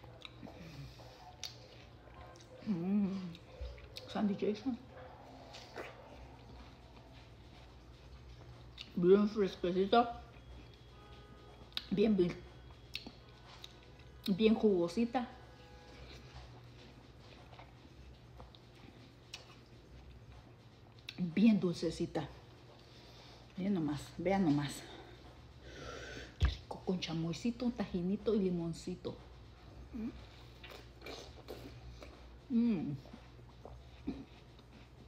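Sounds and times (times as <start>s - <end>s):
wet chewing mouth sound: 0.0s - 4.2s, 5.2s - 9.0s, 12.7s - 14.4s, 16.0s - 21.2s, 29.2s - 35.0s
faint low hum: 0.0s - 35.0s.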